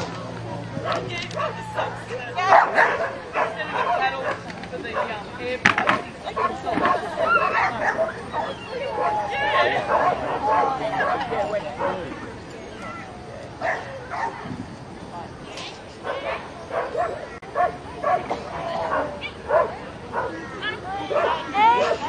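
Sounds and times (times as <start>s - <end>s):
dog barking: 0.8s - 5.2s, 6.4s - 12.3s, 13.6s - 14.4s, 16.0s - 20.4s, 21.1s - 22.0s.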